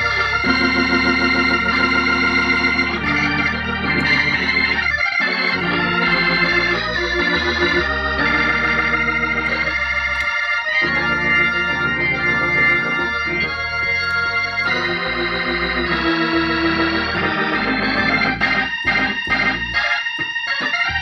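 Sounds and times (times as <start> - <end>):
organ chords over bass line: 0.0 - 21.0.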